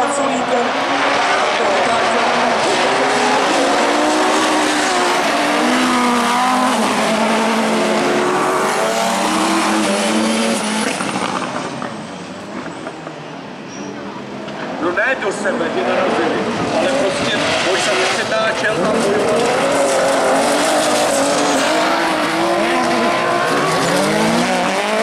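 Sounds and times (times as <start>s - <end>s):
racing buggy engines revving: 0.0s - 25.0s.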